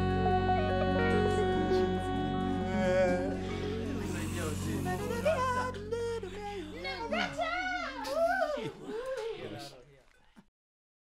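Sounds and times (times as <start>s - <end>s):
person's wavering vocal phrase: 1.8s - 8.7s.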